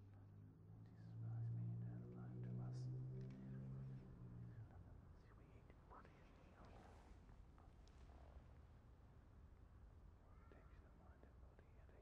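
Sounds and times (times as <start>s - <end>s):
faint whispering: 4.6s - 7.2s, 10.3s - 12.0s.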